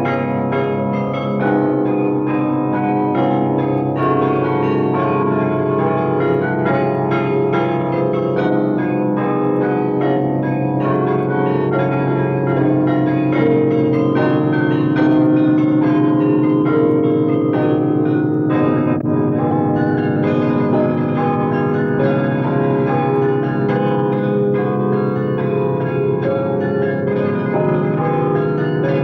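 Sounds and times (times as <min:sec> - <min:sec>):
bell-like tones over held chords: 0:00.0 - 0:29.0.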